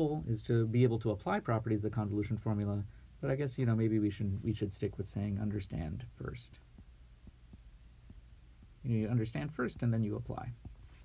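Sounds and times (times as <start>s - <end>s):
man speaking: 0.0s - 6.8s, 8.8s - 10.7s
faint low hum: 0.0s - 11.0s
stylus ticking on a tablet: 6.6s - 10.8s.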